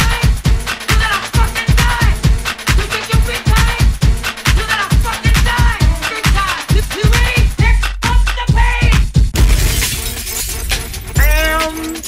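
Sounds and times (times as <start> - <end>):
pounding kick drum: 0.0 - 11.8
loud crashing noise effect: 9.4 - 11.2.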